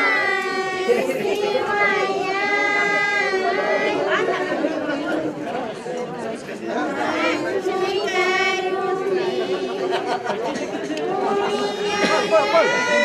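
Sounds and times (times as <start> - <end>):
high voices singing held notes: 0.0 - 5.5, 6.8 - 13.0
crowd chatter: 0.0 - 13.0.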